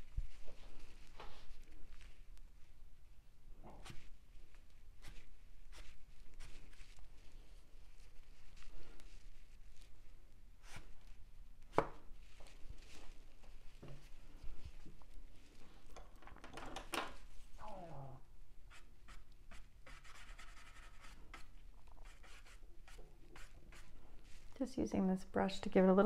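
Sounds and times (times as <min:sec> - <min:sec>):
rag dabbing on paper: 0:03.8 - 0:14.2, 0:18.7 - 0:24.6.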